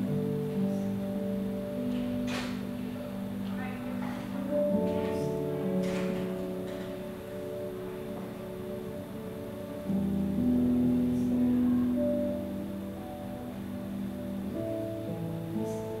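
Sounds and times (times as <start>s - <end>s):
soft keyboard chords: 0.0s - 16.0s.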